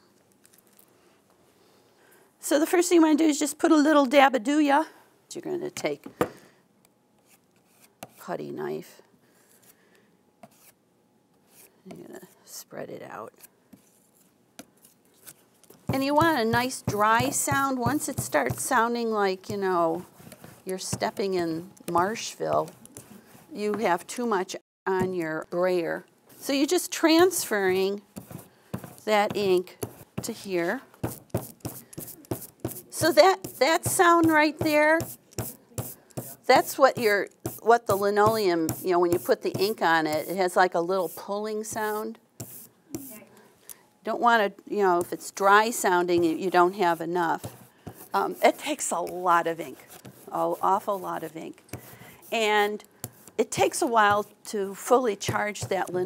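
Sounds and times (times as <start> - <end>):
brayer rolling through ink: 13.8 - 24.3, 25.0 - 43.2, 44.8 - 56.0.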